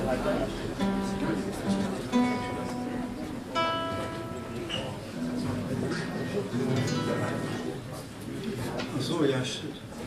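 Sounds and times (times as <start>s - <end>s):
fingerstyle acoustic guitar: 0.4s - 8.2s.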